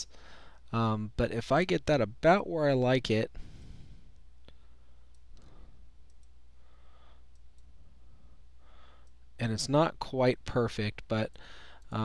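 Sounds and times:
low electrical hum: 0.0s - 12.0s
computer mouse clicking: 5.1s - 6.4s.

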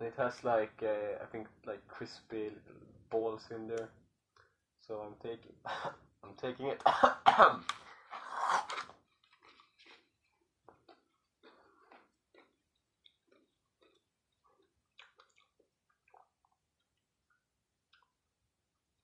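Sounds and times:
person coughing: 6.8s - 7.7s
chewing chocolate bar: 7.7s - 18.2s.

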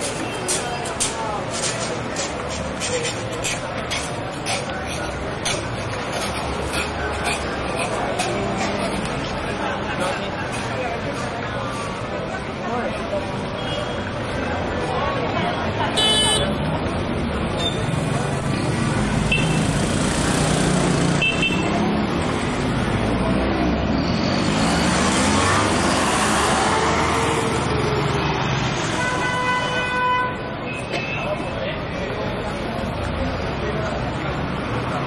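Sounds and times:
traffic rumble: 0.0s - 35.0s
car horns honking: 16.0s - 16.6s, 19.3s - 19.7s, 29.0s - 31.2s
vehicle passing: 18.1s - 29.0s.

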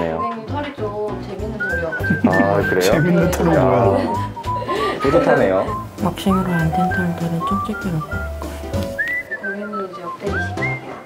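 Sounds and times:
light musical accompaniment: 0.0s - 11.0s
whistled melody: 0.0s - 11.0s.

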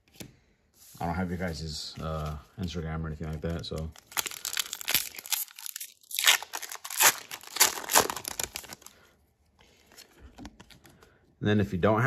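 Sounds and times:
foil wrapper tearing and crinkling: 3.7s - 8.9s.

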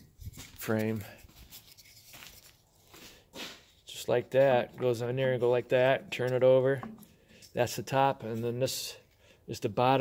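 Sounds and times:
soft scuffs and rustles: 0.0s - 9.2s.

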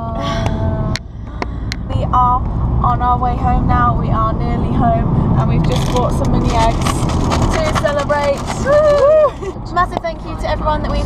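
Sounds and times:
women talking: 0.0s - 1.0s, 1.8s - 11.0s
car cabin rumble: 0.0s - 11.0s
women laughing: 8.7s - 9.6s.

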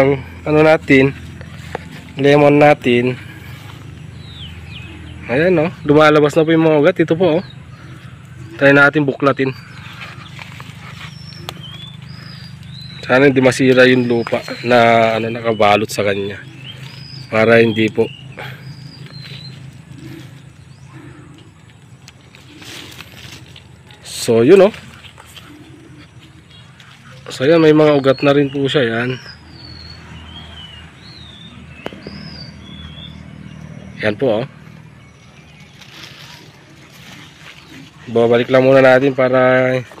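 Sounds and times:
birds chirping: 0.0s - 40.0s
steady low hum: 0.0s - 40.0s.

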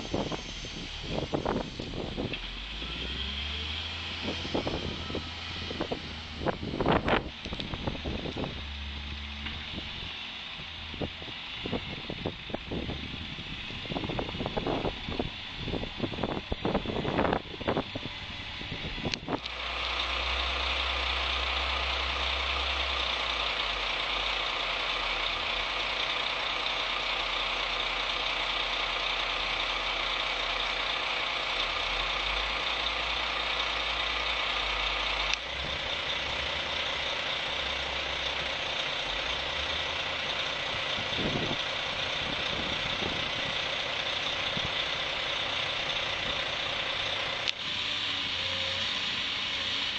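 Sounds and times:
diesel truck engine idling: 0.0s - 49.9s.

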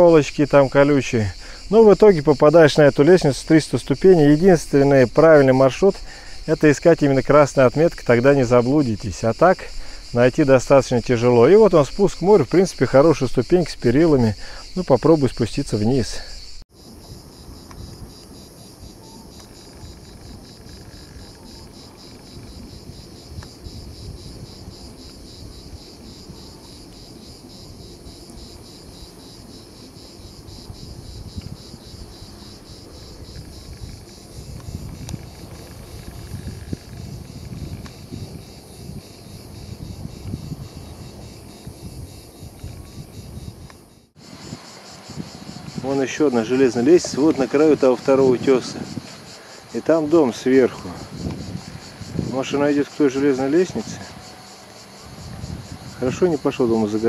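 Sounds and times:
pulsing insect chorus: 0.0s - 57.0s.

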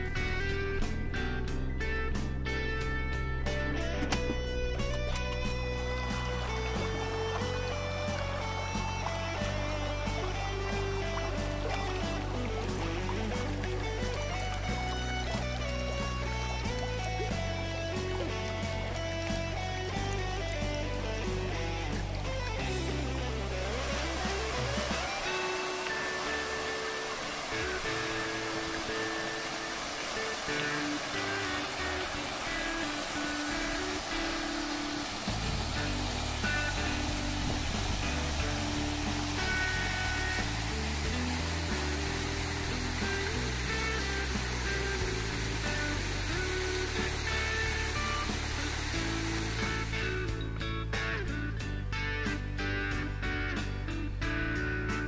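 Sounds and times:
background music: 0.0s - 55.0s
fountain jets splashing into pond: 3.5s - 51.3s.

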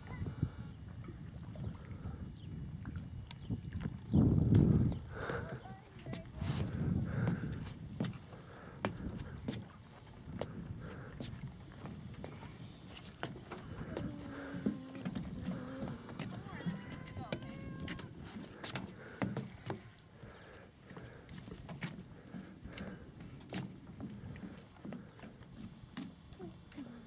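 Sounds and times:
child's footsteps on wooden dock: 5.6s - 27.0s.

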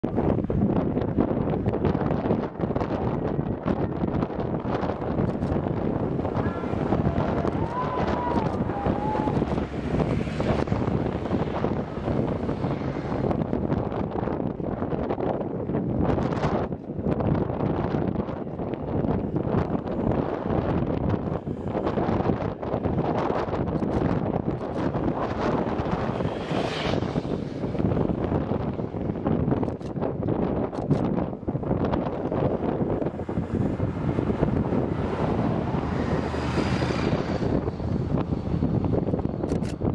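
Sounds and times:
wind buffeting microphone: 0.0s - 39.9s.

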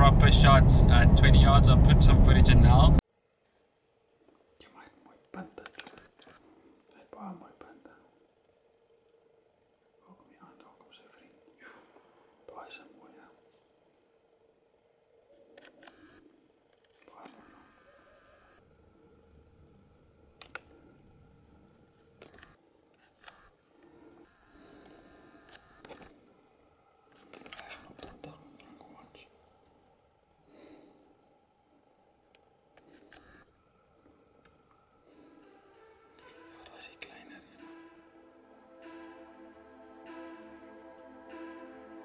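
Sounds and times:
hushed whispering: 4.5s - 8.2s, 10.0s - 13.6s, 17.0s - 17.5s, 27.4s - 29.4s, 36.5s - 37.6s.

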